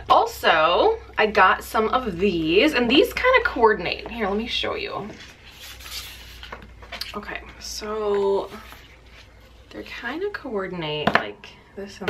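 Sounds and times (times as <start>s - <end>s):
paper rustling and sliding: 5.1s - 6.7s.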